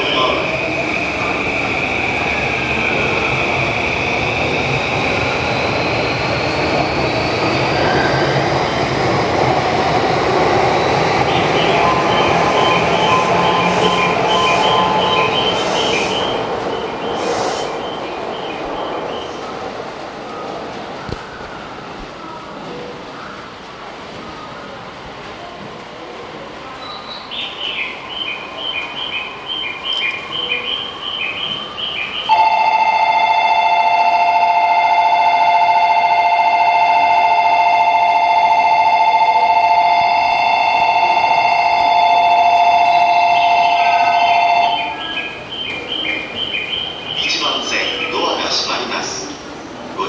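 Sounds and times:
station departure bell ringing: 0.0 - 17.2, 26.8 - 49.3
public-address voice: 47.2 - 50.0.

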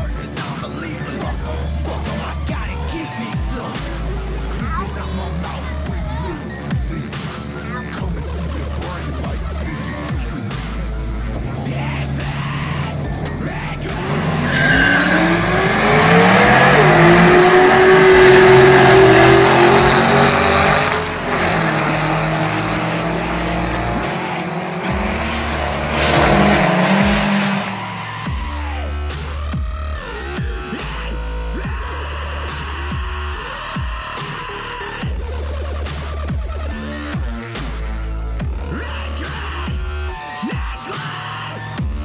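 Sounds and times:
drag car engines accelerating: 0.0 - 42.0
dubstep music: 0.0 - 42.0.

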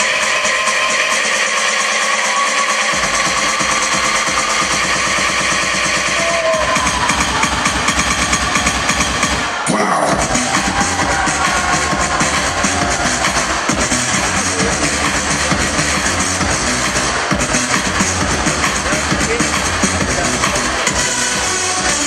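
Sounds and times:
hip-hop dance music: 0.0 - 22.0.

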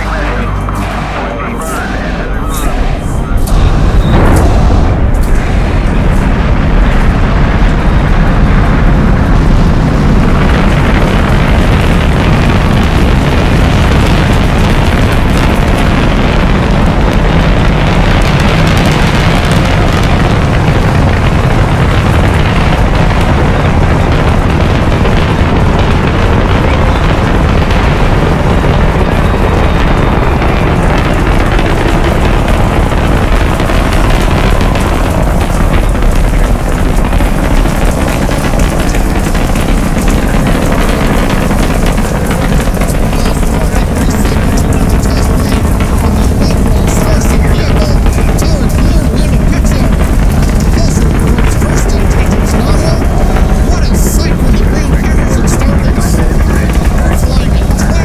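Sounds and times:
crackle: 0.0 - 58.0
rocket launch roar: 0.0 - 58.0.

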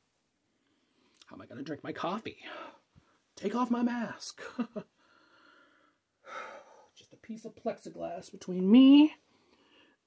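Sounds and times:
faint breathing: 0.5 - 1.2, 4.9 - 7.0, 9.2 - 10.0
man sighing: 6.2 - 7.0.

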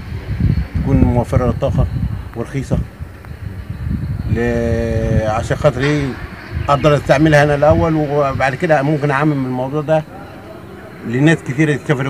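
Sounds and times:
wind rumble on microphone: 0.0 - 12.0
man speaking: 0.8 - 2.9, 4.3 - 12.0.

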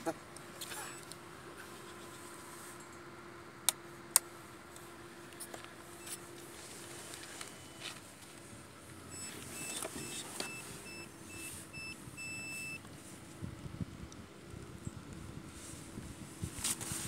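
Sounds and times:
fusion splicer beeps: 0.8 - 1.2, 6.0 - 6.3, 7.5 - 8.0, 9.1 - 12.8.

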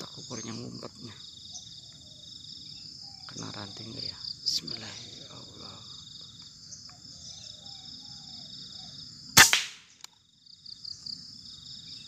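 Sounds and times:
insects buzzing: 0.0 - 12.0
air rifle shot: 9.4 - 10.0.

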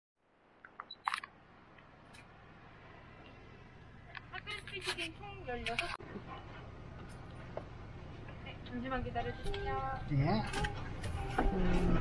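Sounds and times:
faint steady background noise: 0.2 - 12.0.

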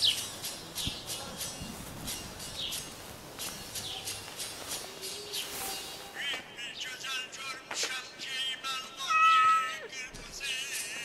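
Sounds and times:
music: 0.0 - 6.7, 9.9 - 11.0
cat meowing: 9.1 - 9.9.

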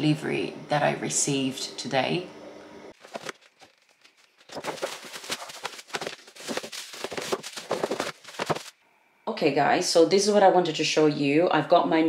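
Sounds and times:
paper packaging crinkling: 3.0 - 8.8.

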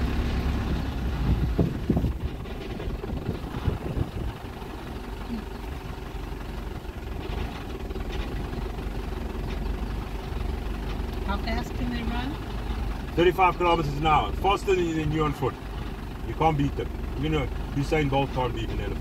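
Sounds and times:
vehicle engine at low revs: 0.0 - 19.0.

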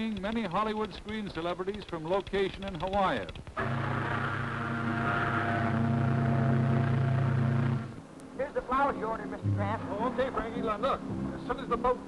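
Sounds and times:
steamship whistle blast: 3.6 - 7.9.

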